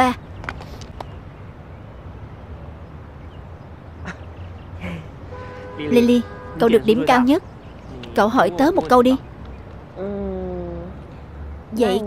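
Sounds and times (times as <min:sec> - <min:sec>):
short vocal sounds: 0:10.0 - 0:11.1.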